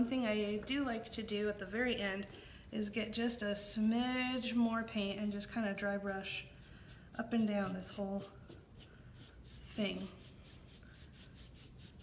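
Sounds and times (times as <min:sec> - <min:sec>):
paintbrush scratching on wood: 0:02.8 - 0:12.0.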